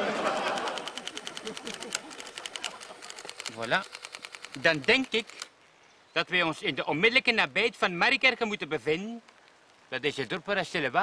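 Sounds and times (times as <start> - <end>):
printing calculator clattering: 0.3 - 5.5.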